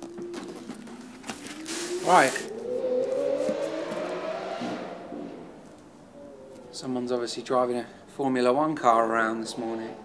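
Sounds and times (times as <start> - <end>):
sports car engine driving past: 1.9 - 6.2.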